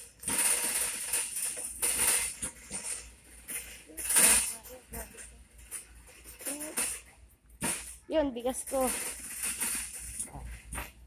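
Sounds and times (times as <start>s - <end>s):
shopping cart rattling on concrete: 0.0s - 11.0s.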